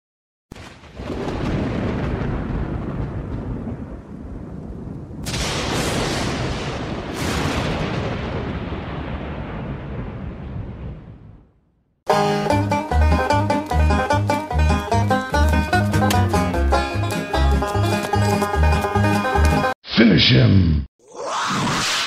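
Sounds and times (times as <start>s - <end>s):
loud thunder cracks: 0.5s - 11.6s
rolling thunder rumble: 0.5s - 11.6s.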